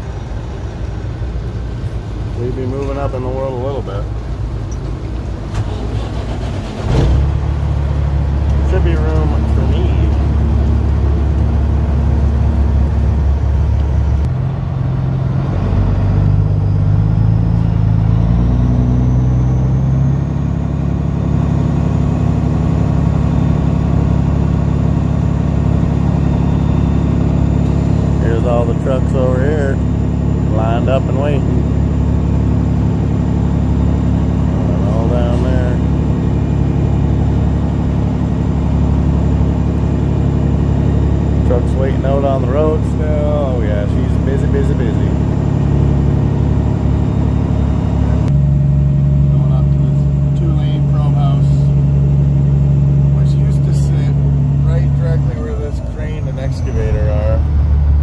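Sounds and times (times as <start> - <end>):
diesel truck engine shifting gears: 0.0 - 58.0.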